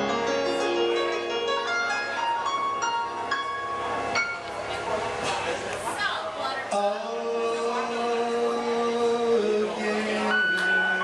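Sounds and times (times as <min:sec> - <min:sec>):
keyboard backing: 0:00.0 - 0:05.9, 0:06.5 - 0:11.0.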